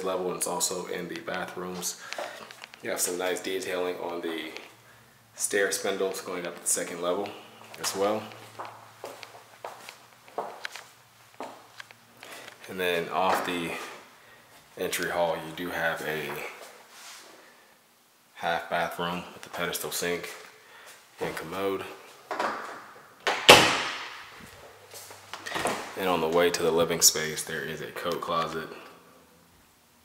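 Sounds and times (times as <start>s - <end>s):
footsteps on vinyl floor: 5.9s - 15.3s, 21.2s - 26.7s.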